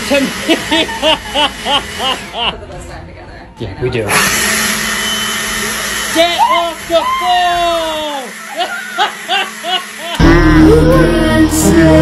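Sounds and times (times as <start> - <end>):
leaf blower blowing: 4.1 - 12.0.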